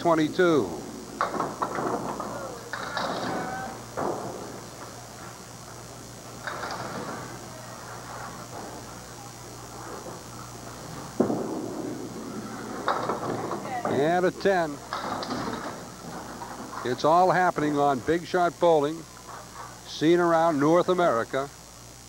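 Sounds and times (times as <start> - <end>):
bowling ball crashing into pins: 1.1 - 5.0, 11.2 - 14.2
scattered knocks: 1.1 - 7.4, 10.9 - 16.9
background chatter: 1.9 - 11.2, 11.8 - 15.0.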